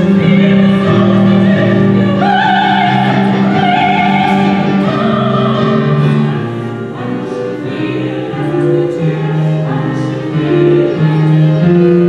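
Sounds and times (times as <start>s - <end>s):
men's choir singing: 0.0s - 10.1s.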